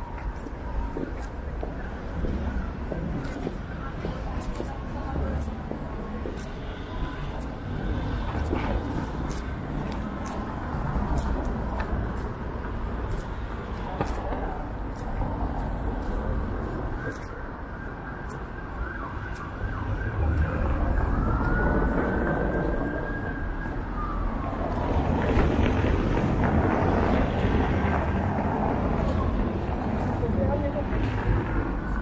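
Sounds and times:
street traffic passing: 0.0 - 32.0.

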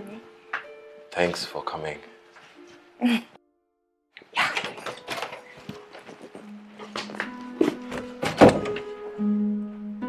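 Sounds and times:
soft music with held notes: 0.0 - 10.0.

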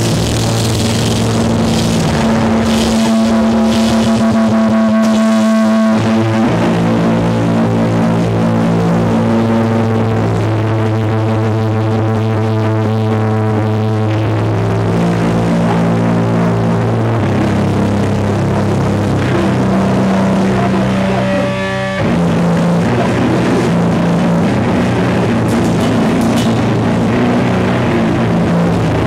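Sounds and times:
band playing loudly: 0.0 - 7.7, 19.1 - 28.8
distorted electric guitar chords: 0.0 - 29.0.

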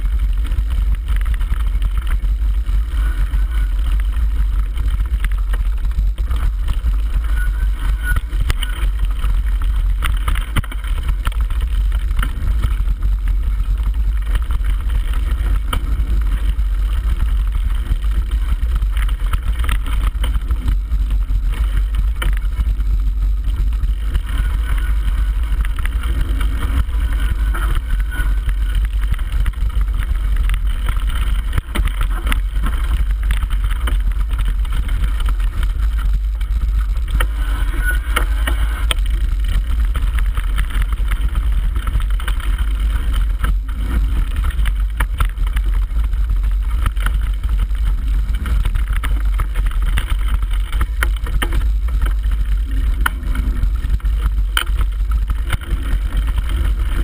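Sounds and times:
bike knocking and rattling: 0.0 - 57.0
wind rumble on microphone: 0.0 - 57.0.

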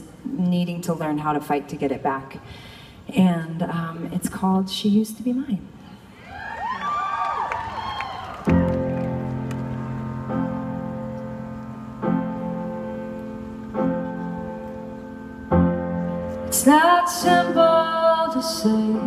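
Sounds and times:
audience whooping and cheering: 6.2 - 10.9
solo piano chords: 8.4 - 19.0.

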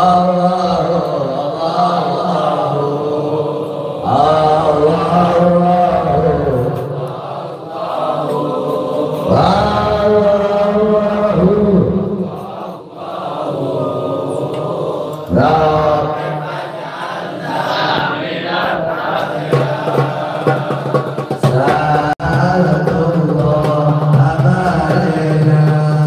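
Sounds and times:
man chanting into a microphone: 0.0 - 26.0.

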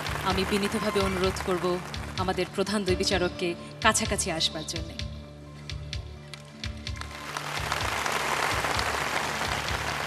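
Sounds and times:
audience applause: 0.0 - 2.0, 7.0 - 10.0
music with a steady beat: 3.8 - 10.0.

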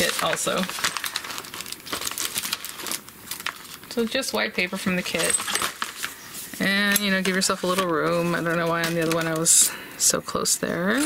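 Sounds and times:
paper rustling and crinkling: 0.0 - 9.7.

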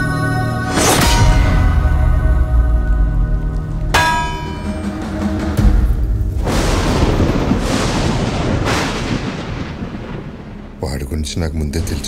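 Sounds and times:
thunder rumbling: 5.1 - 12.0.

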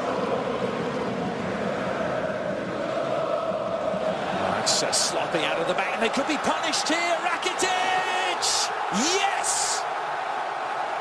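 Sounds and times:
stadium crowd chanting and singing: 0.0 - 11.0.

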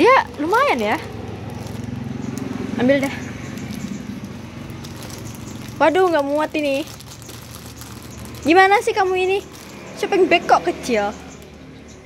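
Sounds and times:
motorcycle engine running: 0.0 - 11.8.

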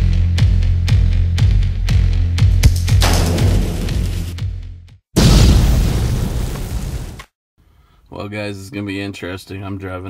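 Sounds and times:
cinematic boom hits: 2.6 - 4.5, 5.2 - 6.7.

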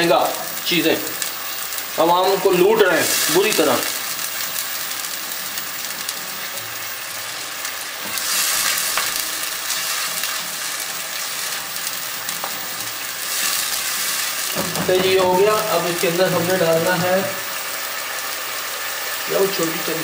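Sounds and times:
onion sizzling in hot oil: 0.0 - 20.0.

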